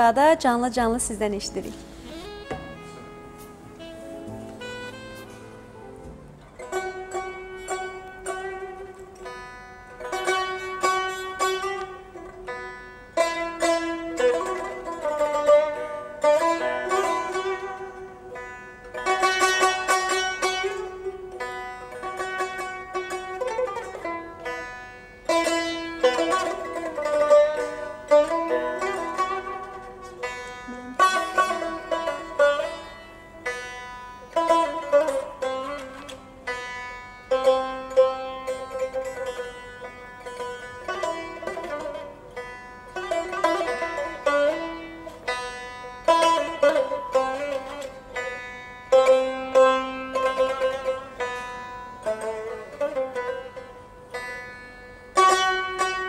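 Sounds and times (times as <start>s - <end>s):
plucked string instrument melody: 0.0s - 56.0s.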